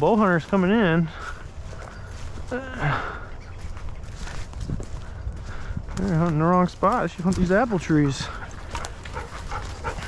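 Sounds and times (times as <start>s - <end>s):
footsteps crunching dry leaves: 0.0s - 10.0s.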